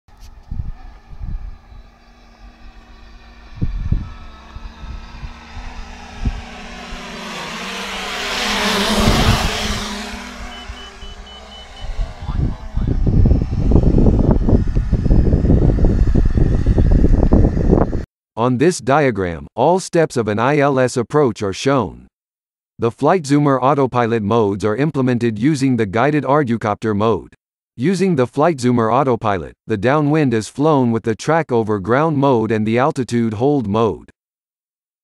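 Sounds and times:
drone propellers buzzing: 0.1 - 18.0
wind buffeting microphone: 0.1 - 18.1.

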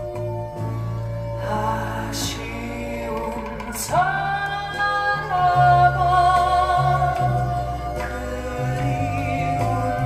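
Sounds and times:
instrumental accompaniment: 0.0 - 10.0
woman singing folk song: 1.4 - 10.0.

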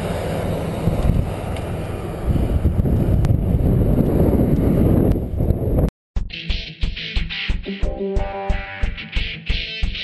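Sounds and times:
bicycle ride rumble: 0.0 - 5.9
wind buffeting microphone: 0.1 - 5.9.

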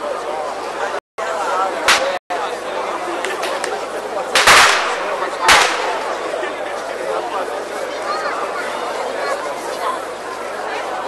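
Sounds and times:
crowd chattering: 0.0 - 11.0
loud bangs: 1.8 - 2.2, 4.3 - 6.6.

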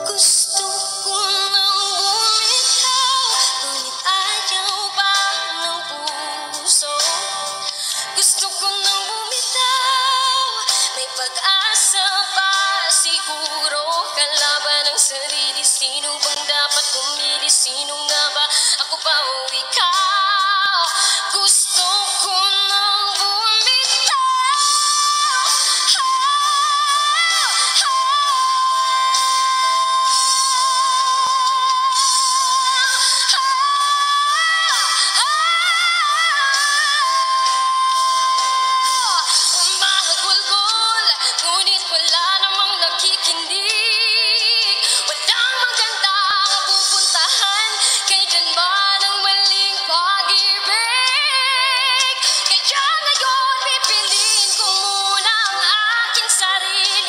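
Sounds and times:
woman singing with vibrato: 0.0 - 57.0.

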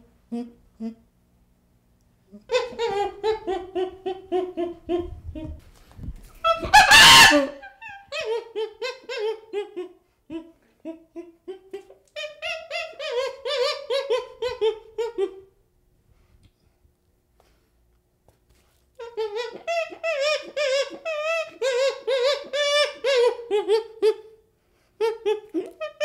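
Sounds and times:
chimpanzee hooting: 2.4 - 5.6, 6.4 - 15.5, 19.0 - 24.4, 25.0 - 26.0
chimpanzee scream: 2.5 - 5.1, 6.4 - 10.4, 11.5 - 15.4, 19.0 - 24.2.

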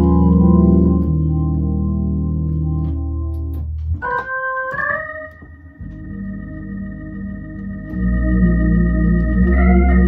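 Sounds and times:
organ through rotating speaker: 0.0 - 10.0.

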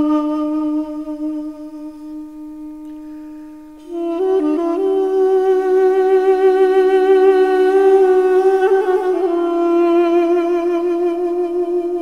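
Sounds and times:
duduk melody: 0.0 - 12.0
duduk drone: 3.8 - 12.0.

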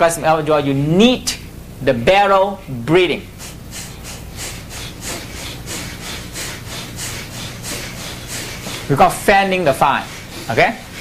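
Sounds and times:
rapid forceful breathing: 3.3 - 11.0.

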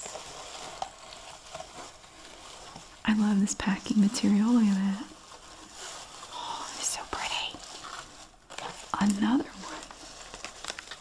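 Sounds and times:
crinkling shred filler and cellophane: 0.0 - 11.0
woman speaking: 3.1 - 5.1, 9.0 - 9.8.

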